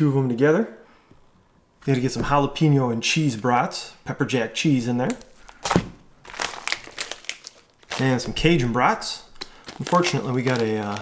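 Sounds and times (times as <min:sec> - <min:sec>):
plastic bag crinkling: 0:05.0 - 0:11.0.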